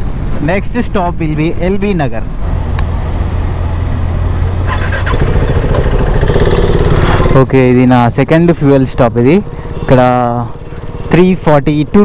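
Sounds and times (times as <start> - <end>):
road noise: 0.0 - 12.0
motorcycle engine droning: 2.4 - 12.0.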